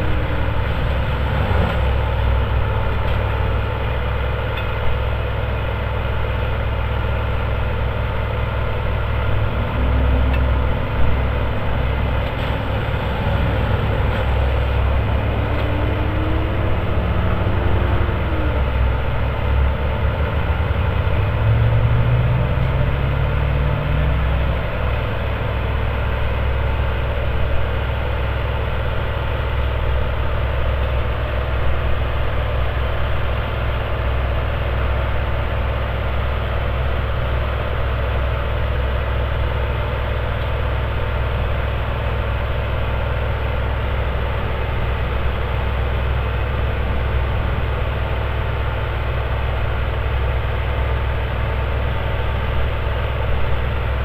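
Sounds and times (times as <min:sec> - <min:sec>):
diesel engine running: 0:00.0 - 0:54.0.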